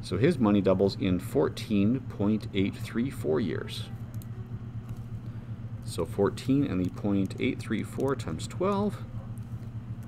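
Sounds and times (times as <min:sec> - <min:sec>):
low background hum: 0:00.0 - 0:10.0
person speaking: 0:05.8 - 0:09.1.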